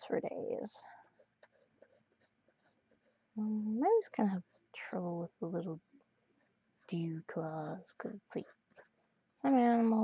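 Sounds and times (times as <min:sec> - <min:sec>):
stylus scratching on tablet: 0:00.4 - 0:04.9, 0:06.8 - 0:09.2.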